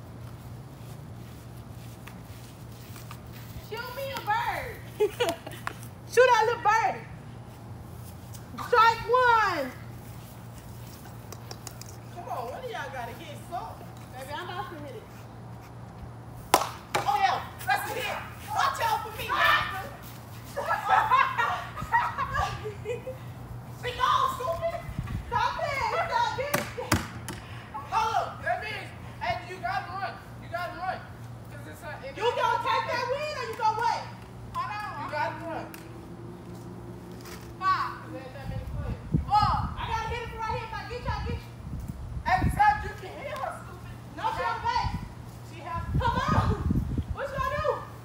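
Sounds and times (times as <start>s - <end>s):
laughter: 5.0s - 5.7s, 20.6s - 23.3s.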